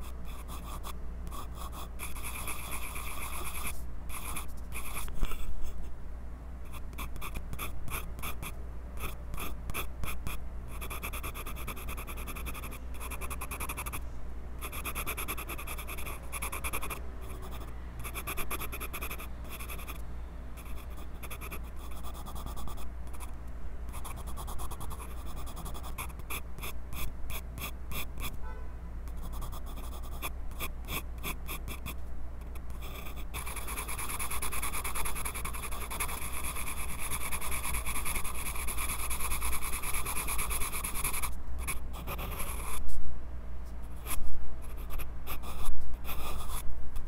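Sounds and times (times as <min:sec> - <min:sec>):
pencil sketching on paper: 0:00.3 - 0:05.1, 0:32.8 - 0:41.3.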